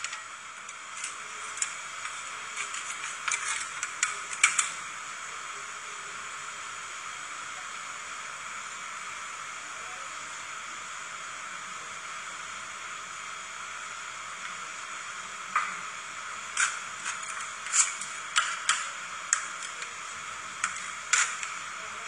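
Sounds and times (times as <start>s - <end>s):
liquid hissing on cold pan: 0.0s - 22.0s.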